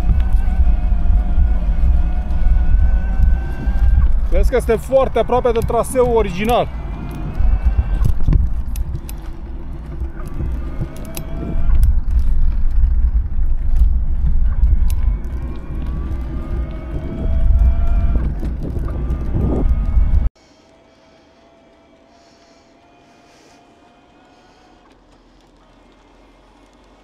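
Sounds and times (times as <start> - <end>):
wind buffeting microphone: 0.0 - 20.3
bike tyres crunching on gravel: 0.0 - 27.0.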